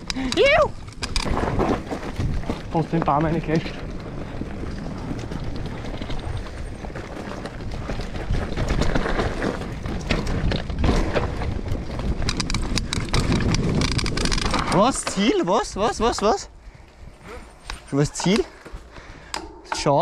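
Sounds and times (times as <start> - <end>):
wind rumble on microphone: 0.0 - 18.0
bike rattles and clicks: 0.0 - 20.0
bike tyres on dirt: 0.0 - 20.0.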